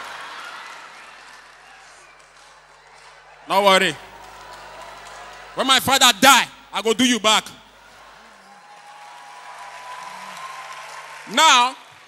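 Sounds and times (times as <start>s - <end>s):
audience applauding: 0.0s - 12.0s
audience laughing: 3.2s - 6.1s, 7.6s - 8.5s.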